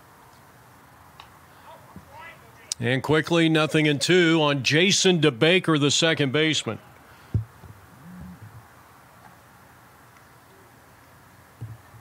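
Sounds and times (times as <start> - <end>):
quiet ballpark ambience: 0.0 - 12.0.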